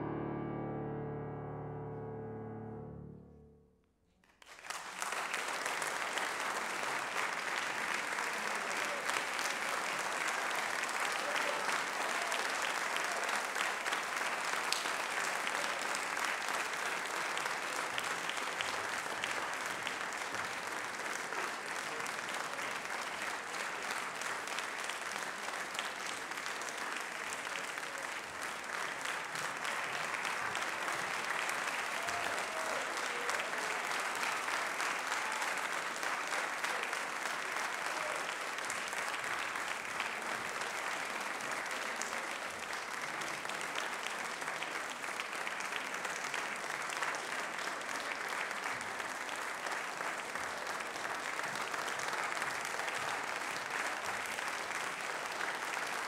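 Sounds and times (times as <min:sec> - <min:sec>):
audience applauding: 0:04.2 - 0:56.0.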